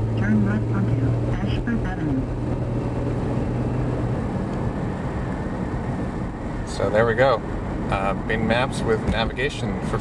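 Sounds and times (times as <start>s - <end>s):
low engine hum: 0.0s - 10.0s
road noise: 0.0s - 10.0s.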